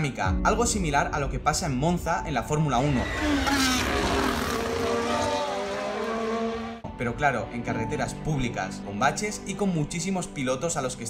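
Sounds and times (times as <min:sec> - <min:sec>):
race car engines passing: 0:02.9 - 0:06.8.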